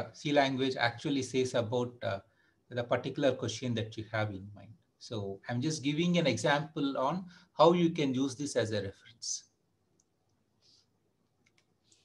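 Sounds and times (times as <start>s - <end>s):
computer mouse clicks: 11.2s - 12.0s.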